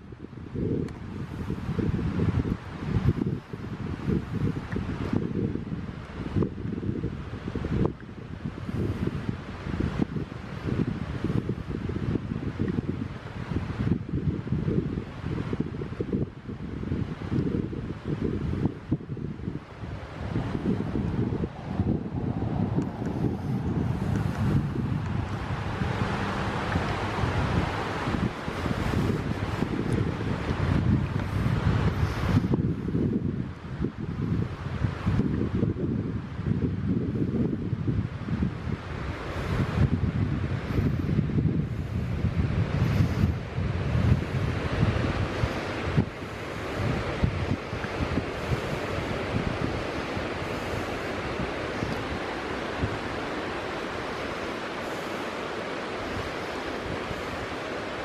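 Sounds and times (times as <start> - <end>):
wind buffeting microphone: 0.0 - 58.0
rushing hiss: 19.8 - 32.9, 40.7 - 58.0.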